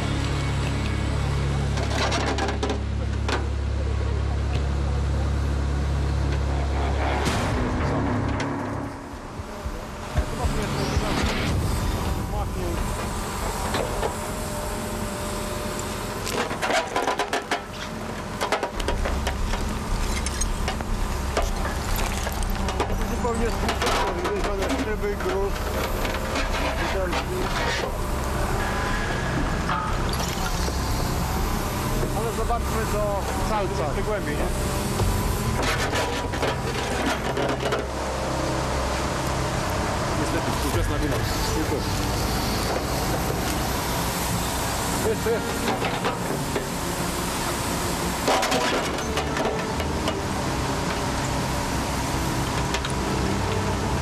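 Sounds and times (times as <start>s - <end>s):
diesel engine under load: 0.0s - 54.0s.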